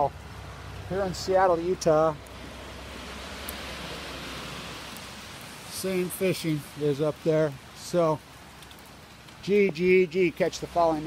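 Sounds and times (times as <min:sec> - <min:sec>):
cars passing on wet street: 0:00.0 - 0:11.0.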